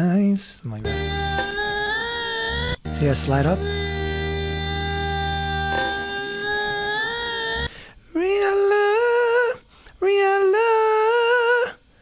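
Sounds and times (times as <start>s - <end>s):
low backing note: 0.8s - 6.9s
man singing long high note: 0.8s - 9.6s.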